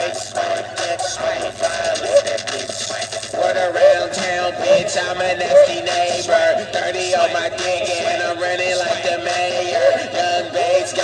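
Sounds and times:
hip-hop beat: 0.0s - 11.0s.

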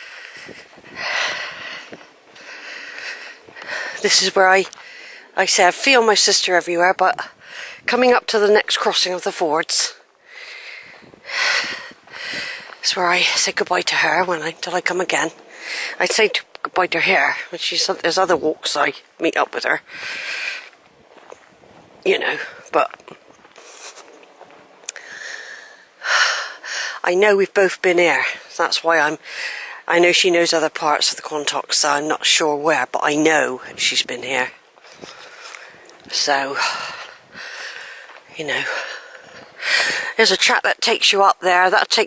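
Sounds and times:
person breathing hard: 0.0s - 4.0s, 10.2s - 12.8s, 19.9s - 20.8s, 25.0s - 27.0s, 36.6s - 40.2s
footsteps on woodland path: 0.0s - 32.0s, 32.8s - 40.4s
short breath: 19.9s - 20.7s.

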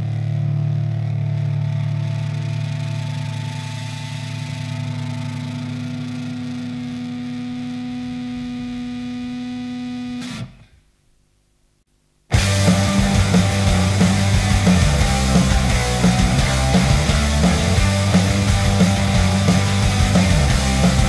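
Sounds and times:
distorted electric guitar chord: 0.0s - 10.8s, 12.3s - 21.0s.

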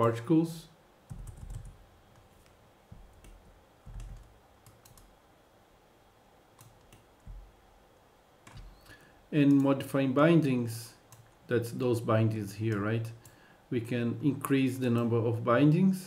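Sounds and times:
computer keyboard keystrokes: 1.1s - 1.8s, 3.1s - 5.1s.

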